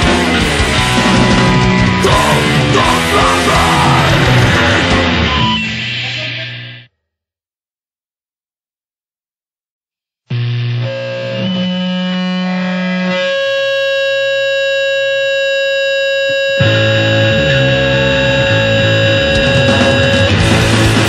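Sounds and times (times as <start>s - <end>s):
punk band with drums: 0.0s - 6.7s, 16.6s - 21.0s
distorted held guitar tones: 0.0s - 6.9s, 10.3s - 21.0s.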